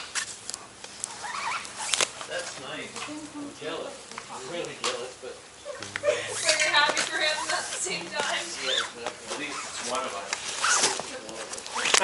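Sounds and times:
people talking: 2.3 - 12.0.

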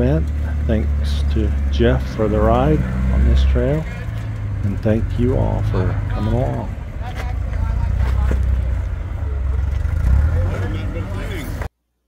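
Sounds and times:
background voices: 0.0 - 11.7
engine rumbling under load: 0.0 - 11.7.

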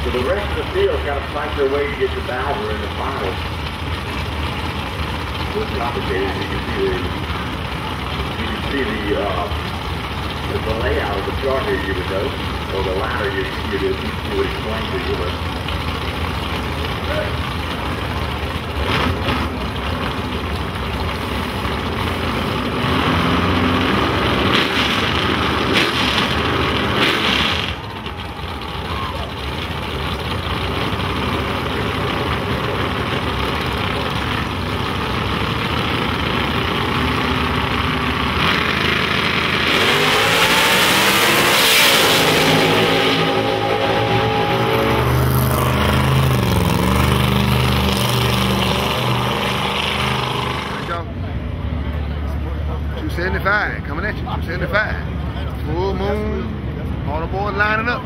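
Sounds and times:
drag car engines rumbling: 0.0 - 58.0
engine revving hard: 22.7 - 27.8, 38.3 - 51.0.

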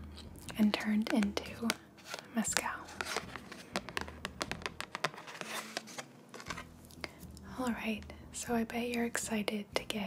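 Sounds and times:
faint muffled music: 0.0 - 10.0
fingernails tapping and scratching card: 0.8 - 6.7.

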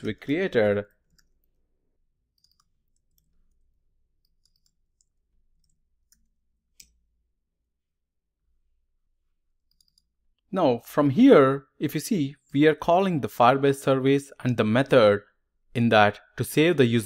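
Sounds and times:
computer keyboard typing clicks: 2.4 - 7.0, 9.7 - 10.1.

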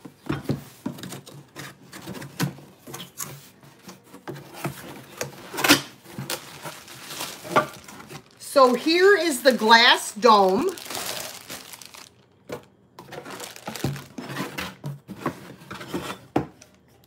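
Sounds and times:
cardboard box rustling: 4.2 - 12.2, 13.1 - 15.6.

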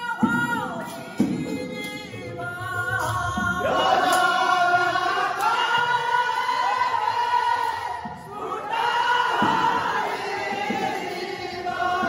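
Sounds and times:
men singing together: 0.0 - 12.0.

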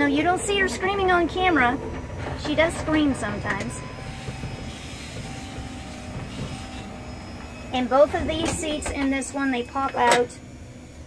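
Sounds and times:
vehicle cabin rumble: 0.0 - 11.0.

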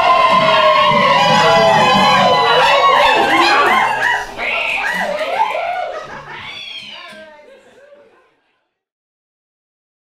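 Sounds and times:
voices singing: 0.0 - 7.0.

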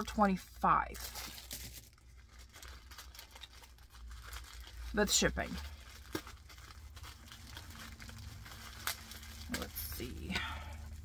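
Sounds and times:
low steady hum: 0.0 - 11.0
plastic packaging crinkling: 0.0 - 11.0.

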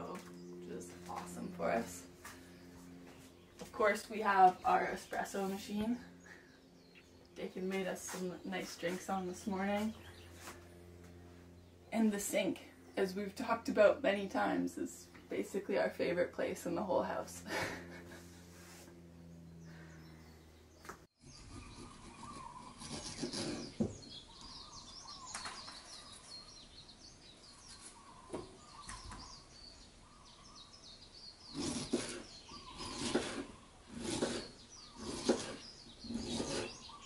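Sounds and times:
birds chirping: 0.0 - 37.0.

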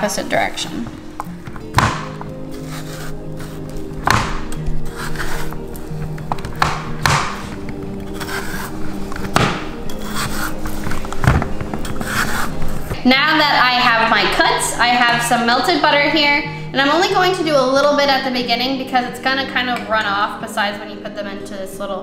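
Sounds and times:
background music: 0.0 - 22.0
knife cutting squash: 1.7 - 13.0.

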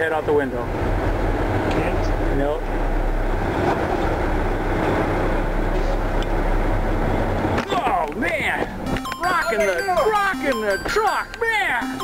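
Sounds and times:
truck engine rumble: 0.0 - 11.9
road noise: 0.0 - 12.0.

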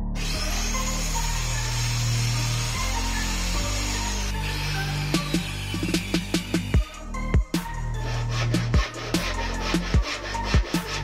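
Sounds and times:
background music: 0.0 - 11.0
electric power tool running: 0.1 - 6.4.

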